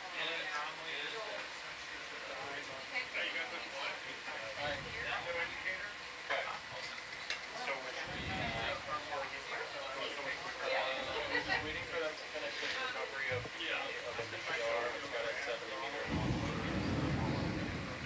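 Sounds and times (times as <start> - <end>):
faint steady hum: 13.0 - 18.0
indistinct voices talking: 16.1 - 18.0.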